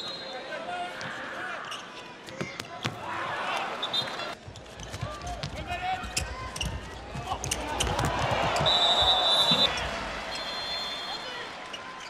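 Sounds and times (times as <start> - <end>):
crowd noise: 0.0 - 12.0
ball bouncing on court: 4.8 - 9.9
referee's whistle blast: 8.6 - 11.4.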